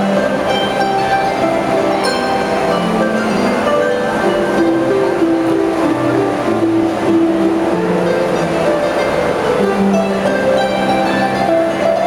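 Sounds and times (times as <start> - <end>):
harps playing: 0.0 - 12.0.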